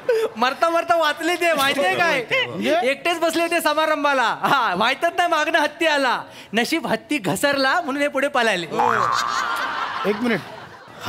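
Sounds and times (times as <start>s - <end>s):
audience laughing: 8.8s - 11.0s.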